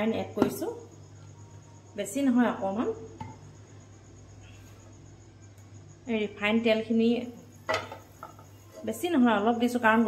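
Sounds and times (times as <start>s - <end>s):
woman speaking: 0.0s - 0.9s, 2.0s - 3.1s, 8.8s - 10.0s.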